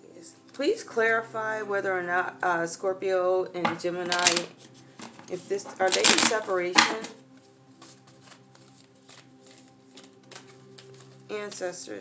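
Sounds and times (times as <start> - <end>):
soft background music: 0.0 - 12.0
cards being shuffled: 4.0 - 11.9.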